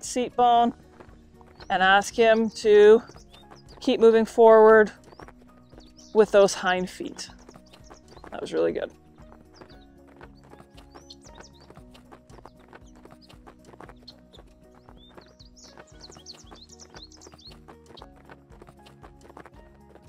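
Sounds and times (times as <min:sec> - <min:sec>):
horse hooves on sand: 0:00.0 - 0:20.0
soft background music: 0:00.0 - 0:20.0.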